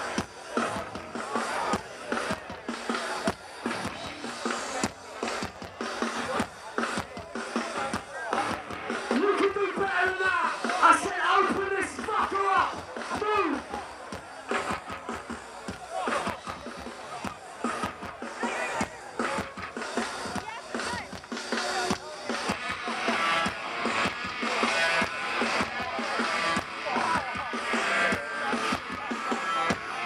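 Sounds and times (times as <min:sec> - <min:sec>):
live punk band music: 0:00.0 - 0:30.0
person shouting: 0:10.2 - 0:13.6.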